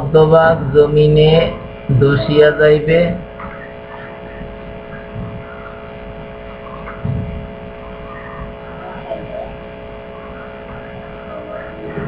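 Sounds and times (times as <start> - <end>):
electrical hum: 0.0 - 12.0
low thump: 6.9 - 7.6.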